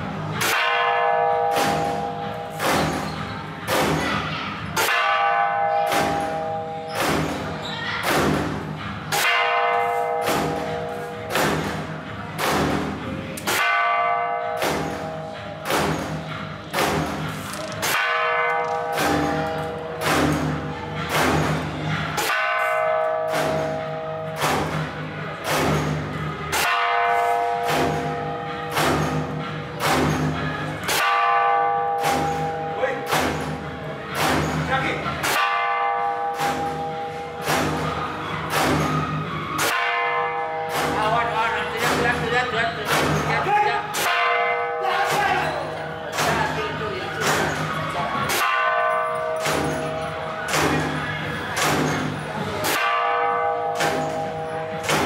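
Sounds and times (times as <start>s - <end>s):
temple bell ringing: 0.0s - 55.0s
drum beats: 7.0s - 14.0s, 14.6s - 31.3s, 32.0s - 35.8s, 36.4s - 40.1s, 40.7s - 55.0s.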